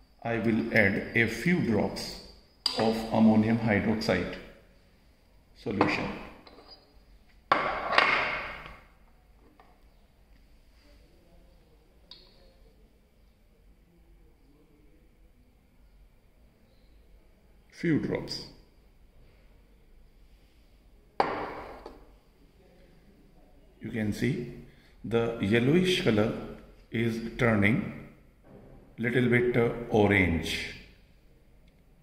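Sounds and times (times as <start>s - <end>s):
glass stopper clinking: 2.6s - 3.3s
glassware knocking on wooden bench: 21.2s - 21.9s.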